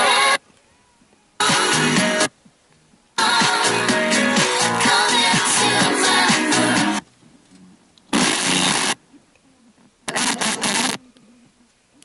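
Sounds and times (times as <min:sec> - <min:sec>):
radio sound bursts: 0:08.1 - 0:09.0, 0:10.1 - 0:11.0.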